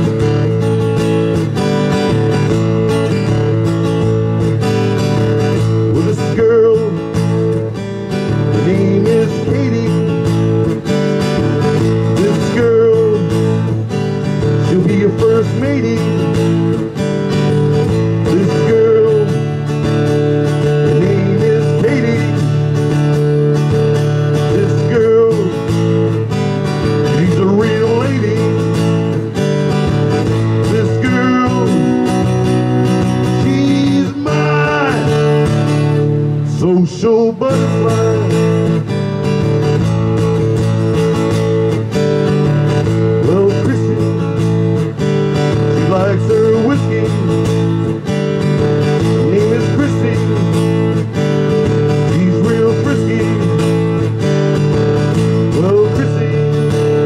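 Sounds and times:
acoustic guitar through amplifier: 0:00.0 - 0:57.0.

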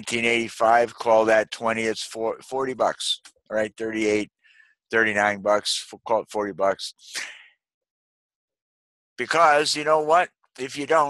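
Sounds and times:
man speaking: 0:00.0 - 0:04.3, 0:04.9 - 0:07.3, 0:09.2 - 0:11.0.

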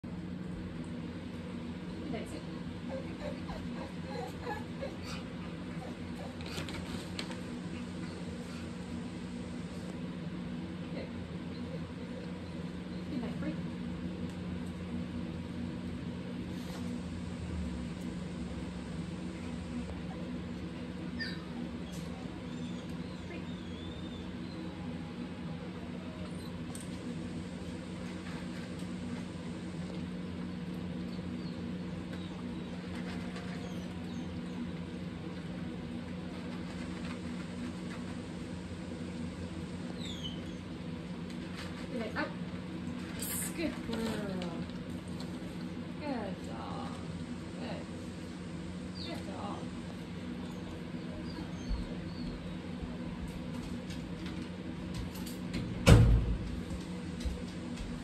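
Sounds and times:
steady low hum: 0:00.0 - 0:58.0
dogs eating dry kibble: 0:27.8 - 0:38.3.

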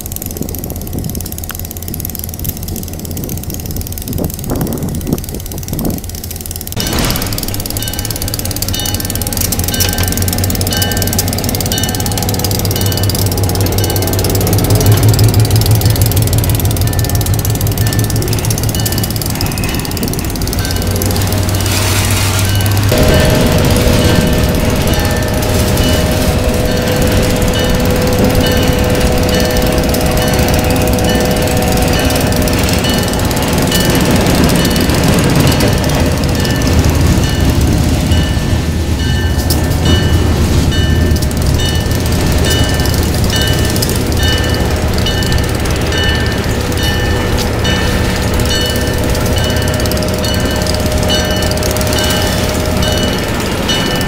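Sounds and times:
diesel locomotive engine running: 0:00.0 - 0:54.0
high steady hum: 0:00.0 - 0:54.0
locomotive bell ringing: 0:00.0 - 0:54.0.

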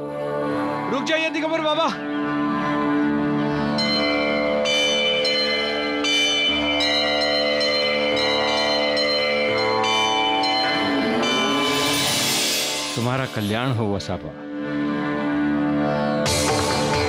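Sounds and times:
bells struck: 0:03.8 - 0:14.0.

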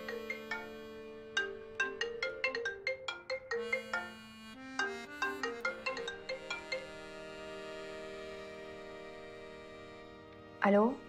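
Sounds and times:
soft marimba-like melodic music: 0:00.0 - 0:09.4.

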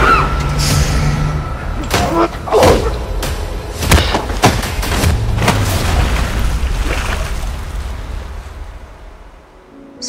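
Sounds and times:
sea surf rushing and splashing: 0:00.0 - 0:10.0.

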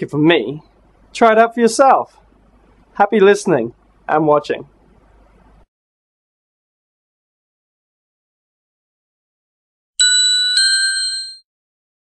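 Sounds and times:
bell-like chime: 0:10.0 - 0:11.4.

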